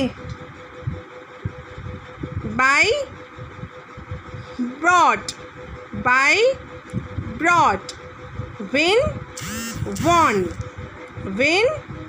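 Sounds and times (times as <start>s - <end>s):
faint hum: 0.0s - 12.0s
spoken words: 9.9s - 10.6s.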